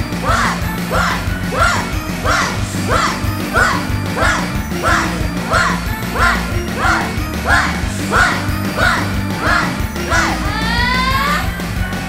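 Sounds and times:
live rock band music: 0:00.0 - 0:12.0
person shouting a call: 0:00.2 - 0:11.0.

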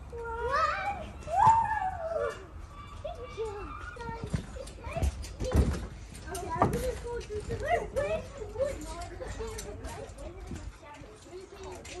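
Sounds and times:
children calling and squealing: 0:00.0 - 0:12.0.

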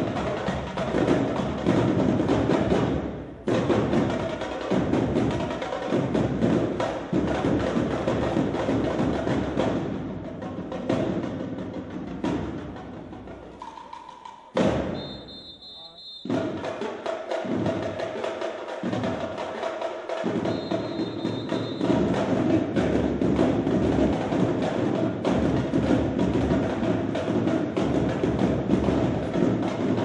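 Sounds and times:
marching snare and bass drums: 0:00.0 - 0:14.0, 0:14.6 - 0:30.0
short high steady tone: 0:15.0 - 0:16.3, 0:20.4 - 0:22.0.

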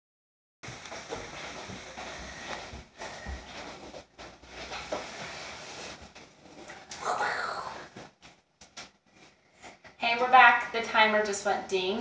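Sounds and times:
room hiss: 0:00.7 - 0:06.3.

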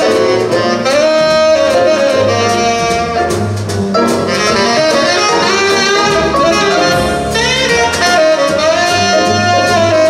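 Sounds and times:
drums and cymbals: 0:00.0 - 0:10.0
jazz orchestra playing: 0:00.0 - 0:10.0
saxophones leading: 0:00.0 - 0:10.0.

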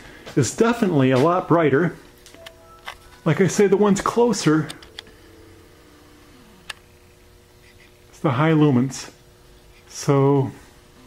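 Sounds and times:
faint steady hum: 0:00.0 - 0:11.0
tone sliding down in pitch: 0:02.4 - 0:06.7.

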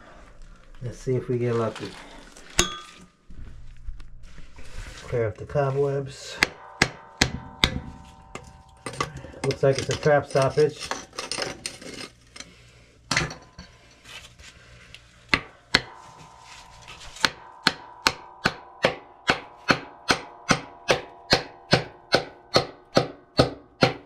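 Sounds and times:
hammer striking metal plug: 0:06.4 - 0:10.6, 0:15.3 - 0:24.0.

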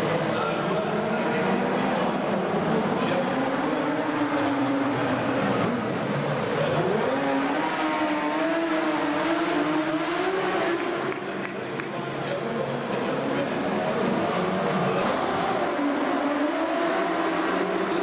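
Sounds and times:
racing engine running hard: 0:00.0 - 0:18.0.

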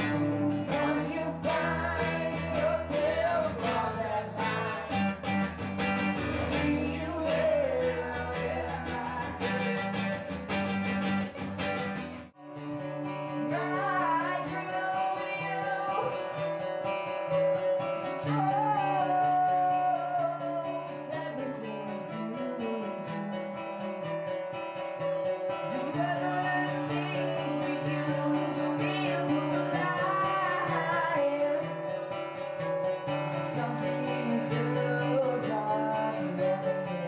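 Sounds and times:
man singing: 0:00.0 - 0:11.2, 0:13.2 - 0:16.7, 0:17.3 - 0:24.2, 0:25.6 - 0:37.0
acoustic guitars strummed: 0:00.0 - 0:37.0.

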